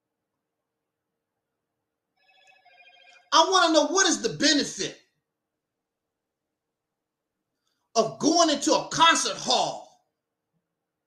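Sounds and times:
electronic ringtone: 2.2 - 3.4.

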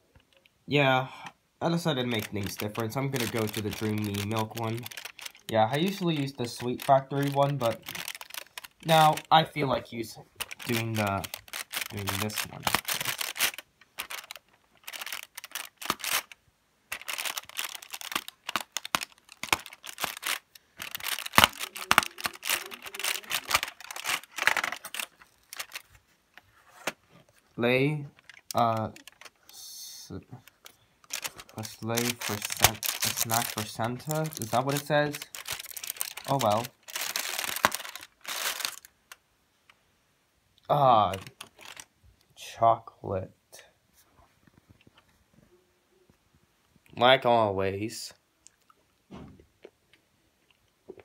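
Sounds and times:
foil crinkling: 1.8 - 29.6, 30.4 - 39.2, 41.1 - 41.9.

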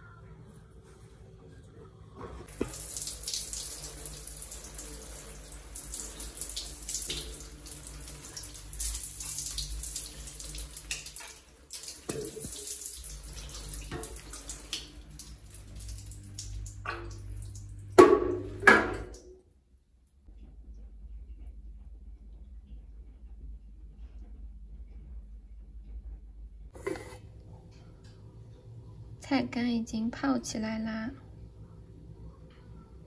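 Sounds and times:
tap water running into sink: 2.5 - 19.3.

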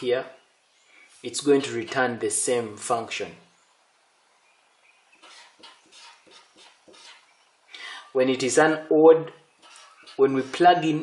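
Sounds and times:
marker scratching on paper: 1.4 - 2.2, 5.2 - 7.3, 9.6 - 10.8.

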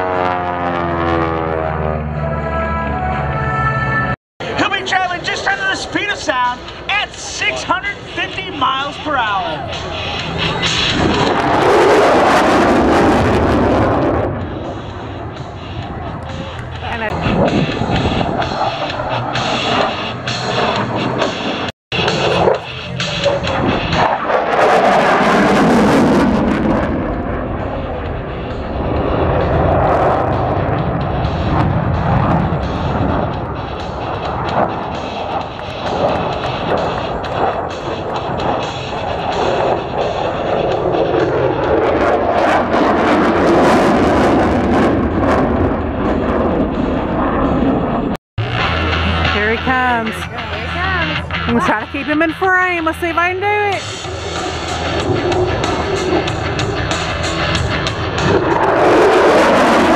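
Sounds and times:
military jet roaring past: 0.0 - 59.9.

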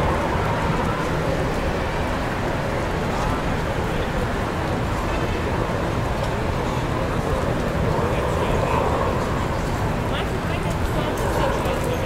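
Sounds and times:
babble of people talking: 0.0 - 12.0
traffic rumble: 0.0 - 12.0.

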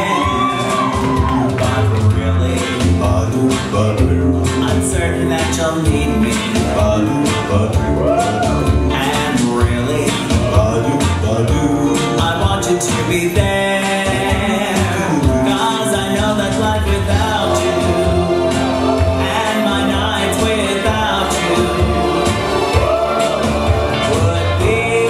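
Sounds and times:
instrumental accompaniment with beat: 0.0 - 25.0
person singing: 0.0 - 25.0.

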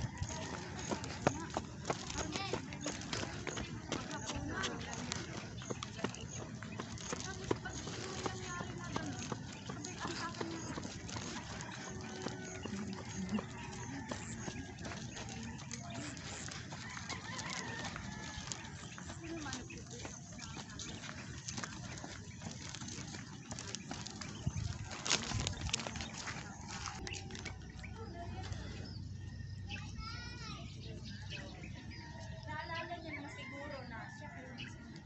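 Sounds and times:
faint voices: 0.0 - 35.0
footsteps on pavement: 0.0 - 35.0.

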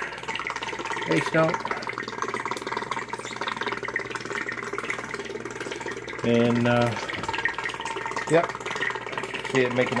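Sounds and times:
aquarium air pump buzzing: 0.0 - 10.0.

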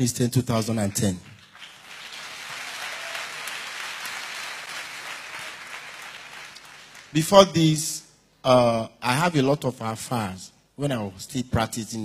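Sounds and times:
crowd applauding: 0.7 - 7.2.

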